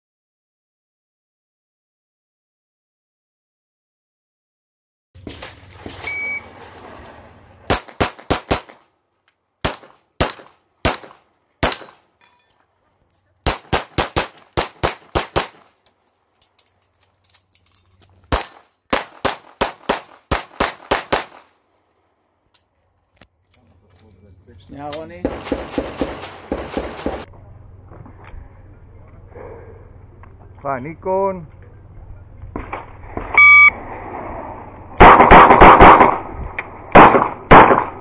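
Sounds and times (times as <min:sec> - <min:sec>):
shot timer beep: 0:06.1 - 0:06.5, 0:33.4 - 0:33.8
pistol firing rapid shots: 0:07.7 - 0:08.8, 0:09.6 - 0:12.0, 0:13.4 - 0:15.6, 0:18.3 - 0:21.4, 0:25.2 - 0:27.3, 0:35.0 - 0:36.2, 0:37.0 - 0:38.0.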